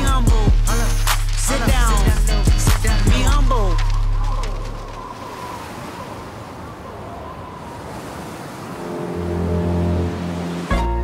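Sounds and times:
ocean surf washing: 0.8 - 11.0
low sustained musical chord: 8.8 - 11.0.

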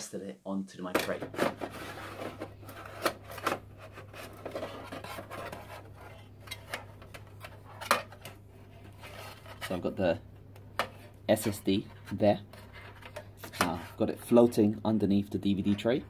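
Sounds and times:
metal rubbing and scraping: 1.2 - 10.0.

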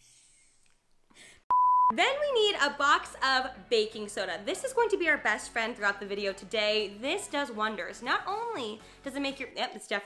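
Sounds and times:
short electronic beep: 1.5 - 2.0.

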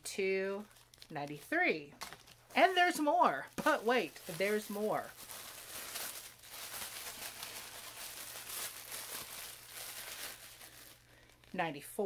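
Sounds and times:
plastic bag crinkling: 0.6 - 11.8.

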